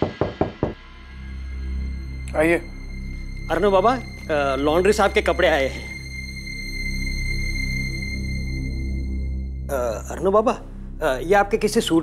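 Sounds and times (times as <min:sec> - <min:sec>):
sustained background score: 0:00.0 - 0:12.0.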